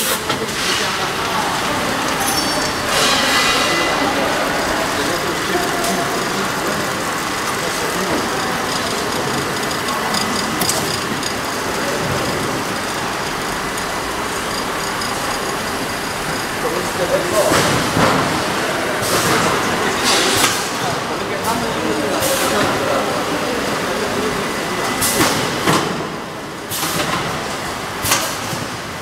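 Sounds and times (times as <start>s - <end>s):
muffled voices: 0.0s - 26.5s
packing machinery running: 0.0s - 29.0s.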